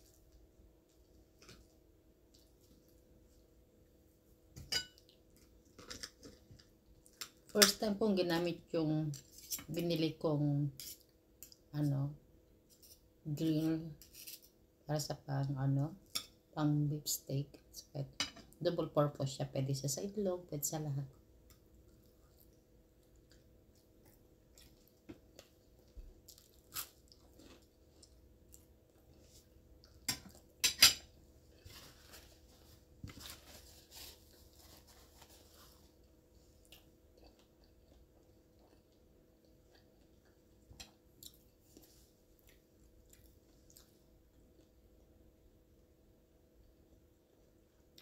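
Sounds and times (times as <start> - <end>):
person chewing crunchy toast: 21.4 - 30.6, 35.2 - 44.8.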